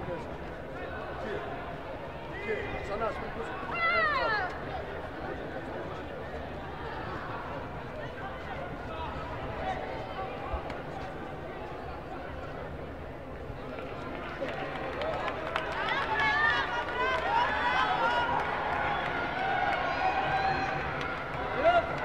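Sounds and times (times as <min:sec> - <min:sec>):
hubbub of many voices: 0:00.0 - 0:22.0.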